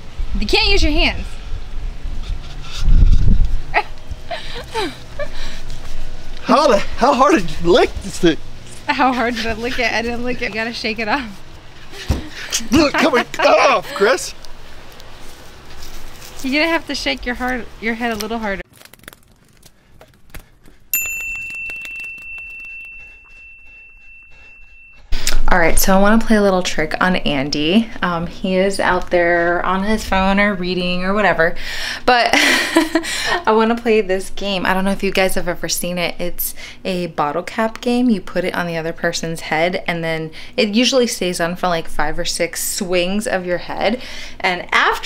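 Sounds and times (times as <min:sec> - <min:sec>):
low rumble on microphone: 0:00.1 - 0:04.3
high bell-like chime: 0:21.0 - 0:25.2.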